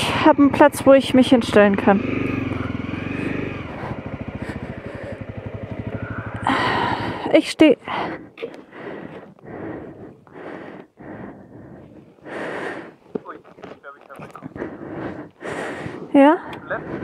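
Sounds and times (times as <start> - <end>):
man talking: 13.3 - 14.6.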